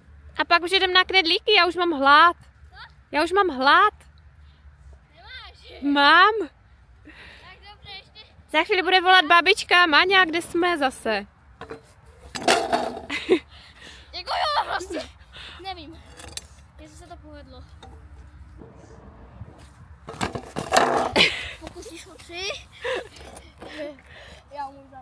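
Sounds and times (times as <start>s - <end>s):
voices calling out: 13.2s - 19.2s.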